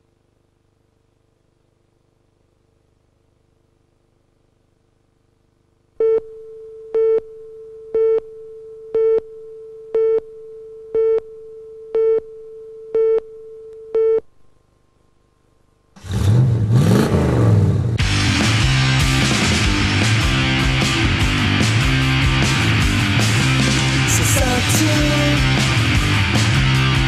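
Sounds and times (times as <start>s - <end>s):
faint steady tone: 0.0s - 16.0s
punk rock band playing: 18.0s - 27.0s.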